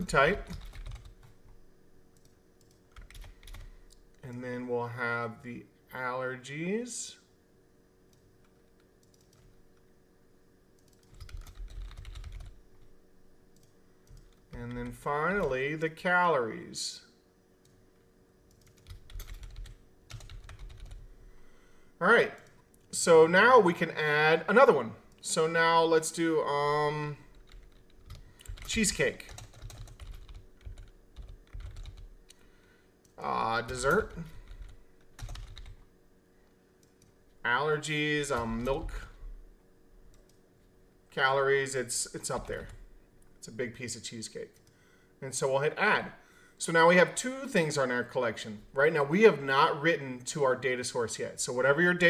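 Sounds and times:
computer keyboard typing: 0.0s - 1.4s, 2.2s - 4.4s, 8.1s - 9.6s, 10.8s - 12.6s, 13.5s - 15.5s, 18.5s - 21.1s, 27.3s - 32.4s, 33.7s - 35.8s, 42.4s - 42.8s.

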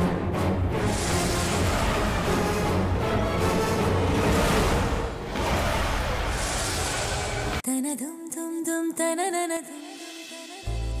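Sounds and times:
dramatic background score: 0.0s - 7.6s.

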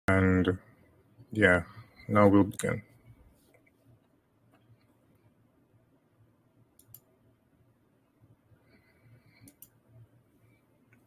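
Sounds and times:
faint clicks: 6.8s - 7.1s, 9.4s - 9.8s.

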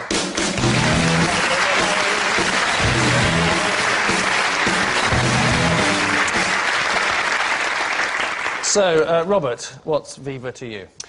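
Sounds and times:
walk-on music: 0.0s - 7.1s
studio audience applauding: 0.0s - 9.0s.

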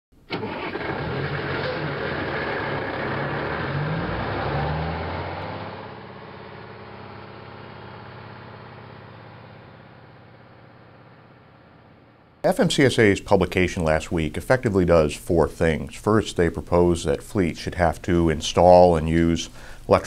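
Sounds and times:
truck engine accelerating past: 0.5s - 12.1s.

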